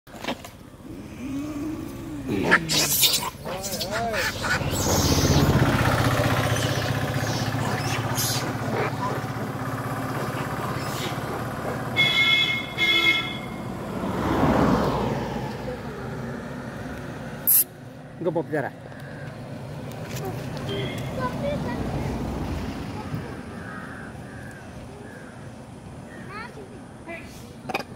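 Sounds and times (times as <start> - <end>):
vehicle engine running: 0.6 - 14.5
people's voices: 0.8 - 5.0.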